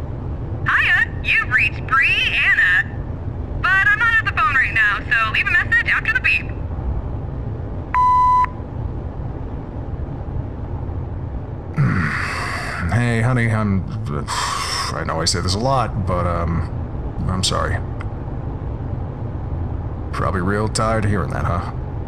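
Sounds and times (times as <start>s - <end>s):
garbled recorded voice on phone: 0.7s - 3.0s, 3.6s - 6.5s, 11.8s - 17.8s
voicemail beep: 8.0s - 8.6s.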